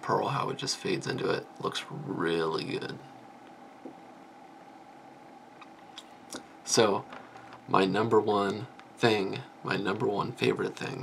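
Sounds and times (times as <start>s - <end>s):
faint background hiss: 0.0s - 11.0s
thin hum-like tone: 0.0s - 11.0s.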